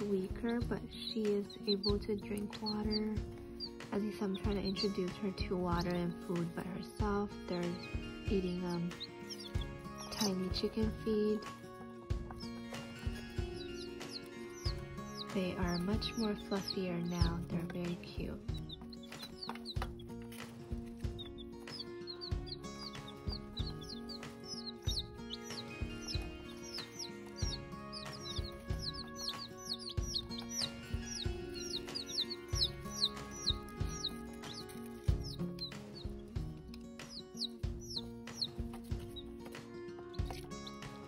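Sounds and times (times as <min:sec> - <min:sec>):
background music: 0:00.0 - 0:41.0
chicks peeping: 0:00.0 - 0:41.0.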